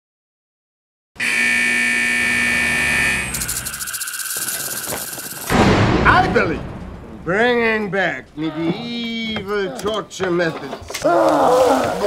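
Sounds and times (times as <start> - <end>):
electric buzzing drone: 1.2 - 5.5
loud burst of noise: 1.6 - 7.4.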